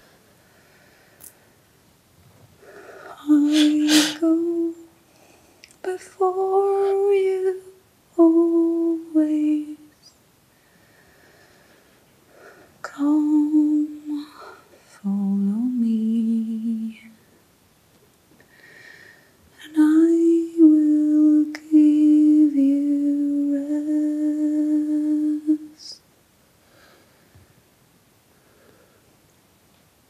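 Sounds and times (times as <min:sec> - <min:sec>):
breathy rush of air: 0:02.8 - 0:04.3
woman singing wordless notes: 0:03.1 - 0:05.0, 0:05.8 - 0:10.1, 0:12.8 - 0:17.2, 0:19.6 - 0:26.0.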